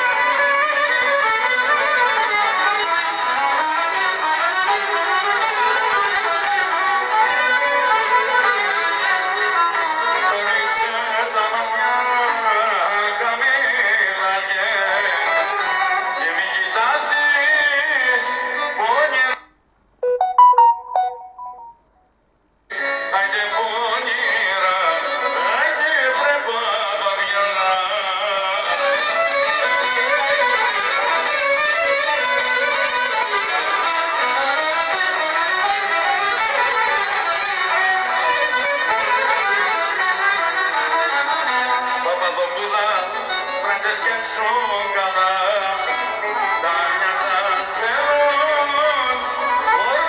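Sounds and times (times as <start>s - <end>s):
folk band with violin: 0.0s - 19.4s, 22.7s - 50.0s
short beeping tones: 20.0s - 22.0s.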